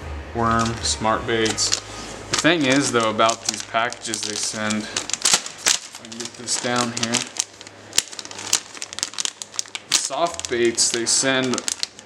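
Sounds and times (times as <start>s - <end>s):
plastic package crinkling: 0.6s - 12.0s.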